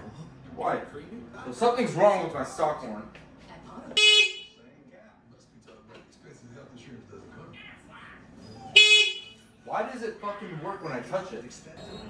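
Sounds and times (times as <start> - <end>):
electric horn short beeps: 8.8 - 9.4.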